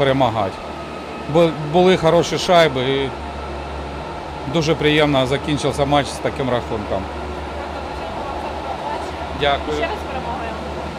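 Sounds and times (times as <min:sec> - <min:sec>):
low background hum: 0:00.0 - 0:10.9.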